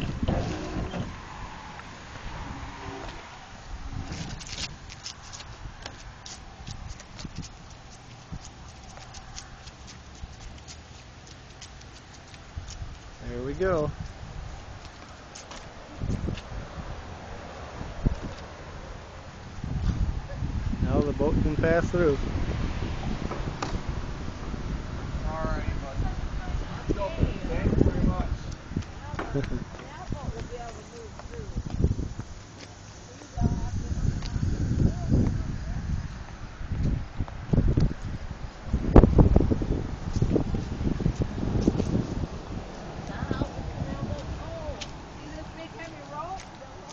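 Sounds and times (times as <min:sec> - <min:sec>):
wind buffeting microphone: 0:00.0 - 0:10.7, 0:11.5 - 0:46.9.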